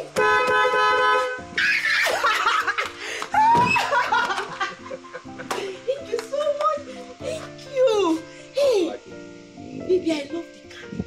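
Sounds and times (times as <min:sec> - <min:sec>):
background music: 0:00.0 - 0:11.0
woman shrieking and laughing: 0:01.6 - 0:05.9.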